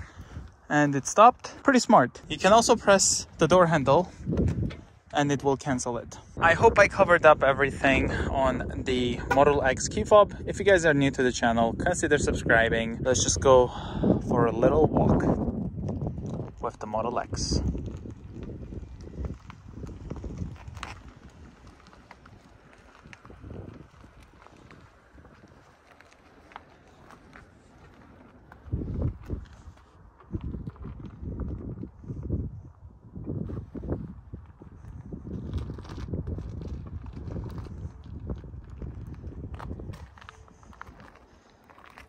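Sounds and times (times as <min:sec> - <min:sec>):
steady low rumble: 0:00.0 - 0:10.8, 0:11.7 - 0:42.0
footsteps walking: 0:19.2 - 0:31.0, 0:35.6 - 0:42.0.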